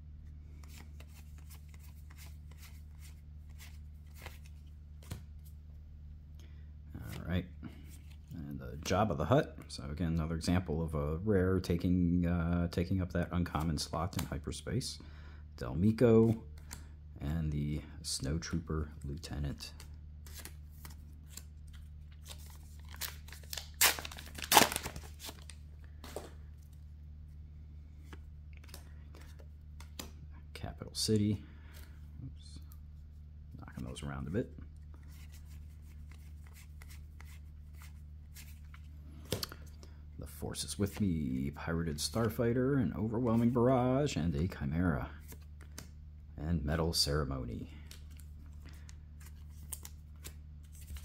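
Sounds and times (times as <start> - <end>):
steady low hum: 0.0 - 51.0
wrapper tearing: 22.2 - 25.6
wrapper rustling and crinkling: 22.2 - 26.3.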